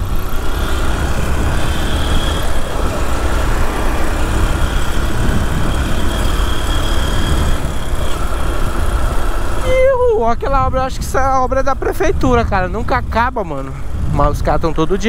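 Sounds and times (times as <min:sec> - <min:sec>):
motorcycle engine running: 0:00.0 - 0:15.0
wind rumbling on microphone: 0:00.0 - 0:15.0.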